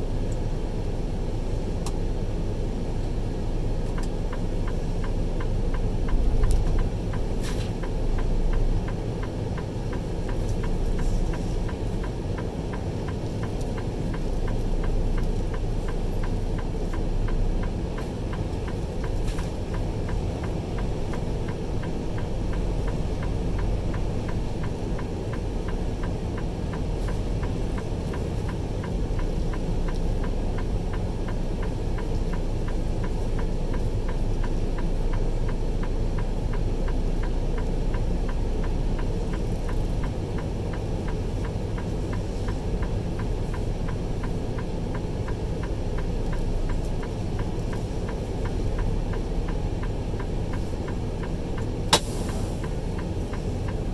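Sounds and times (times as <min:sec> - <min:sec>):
engine and road rumble: 0:00.0 - 0:53.9
fast light ticking: 0:03.9 - 0:53.9.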